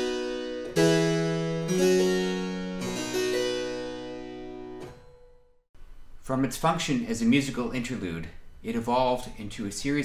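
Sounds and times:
harpsichord chords: 0:00.0 - 0:05.6.

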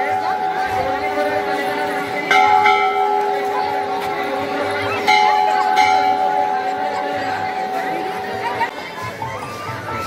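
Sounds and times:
temple bell ringing: 0:00.0 - 0:08.7
crowd chatter: 0:00.0 - 0:10.0.

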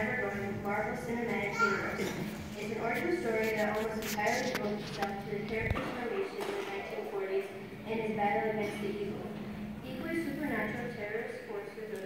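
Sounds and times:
person talking: 0:00.0 - 0:09.3.

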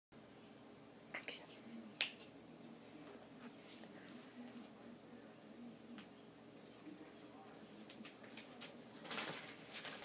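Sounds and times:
person whispering: 0:01.1 - 0:02.0.

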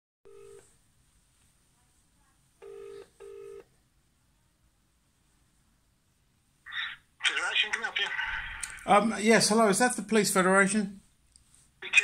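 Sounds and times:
telephone ringing tone: 0:00.3 - 0:00.7, 0:02.6 - 0:03.7.

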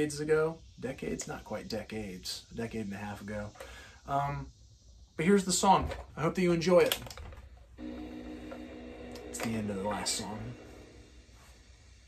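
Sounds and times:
toy cassette player clicks: 0:06.8 - 0:07.4.

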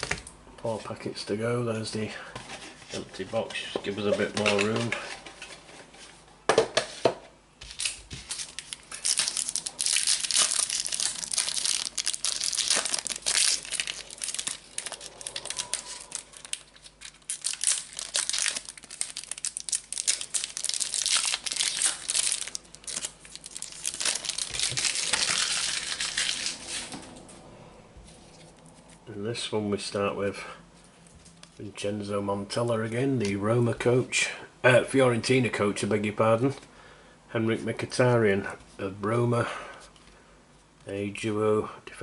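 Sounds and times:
foil wrappers crinkling and tearing: 0:07.6 - 0:27.0.

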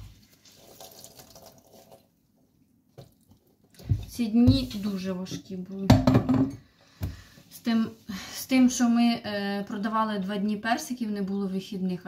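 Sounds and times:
liquid pouring: 0:00.0 - 0:02.2.

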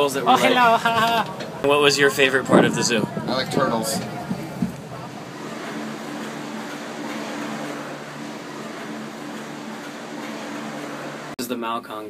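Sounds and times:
cable drive machinery humming: 0:00.0 - 0:11.4.

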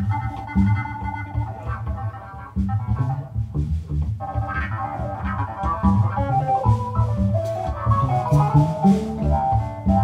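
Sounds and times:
bass line: 0:00.0 - 0:10.0
drum kit: 0:00.0 - 0:10.0
keyboards: 0:00.0 - 0:10.0.

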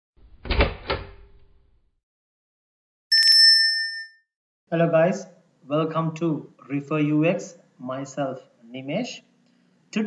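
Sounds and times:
bright bell ding: 0:03.1 - 0:04.2.

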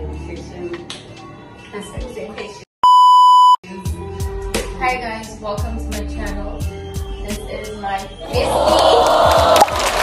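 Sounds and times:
test card bleep tone: 0:02.8 - 0:03.6
background music with deep bass: 0:03.7 - 0:10.0.

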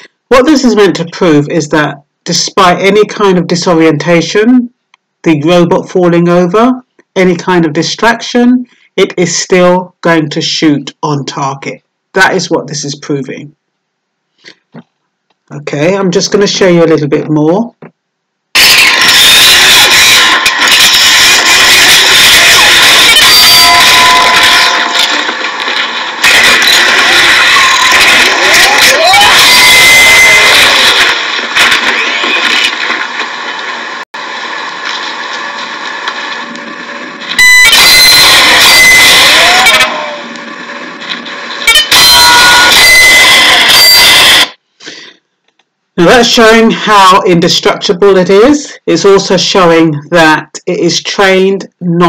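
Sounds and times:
harsh distorted noise: 0:18.6 - 0:44.6.

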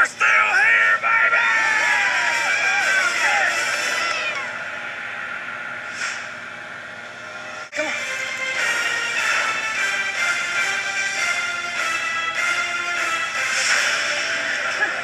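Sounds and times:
men cheering and whooping: 0:00.0 - 0:04.6
background music: 0:00.0 - 0:15.0.

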